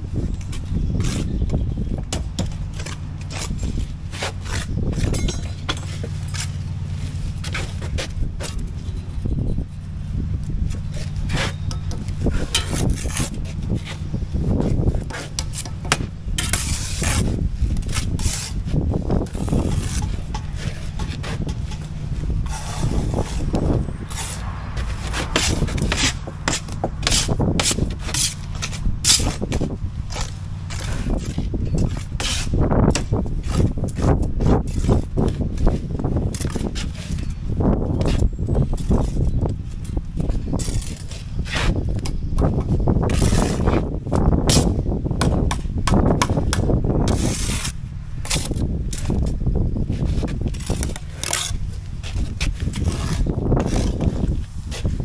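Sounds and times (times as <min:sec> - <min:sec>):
trowels scraping mortar: 0:00.3 - 0:09.0, 0:10.7 - 0:55.0
trowel tapping concrete blocks: 0:44.5 - 0:46.7.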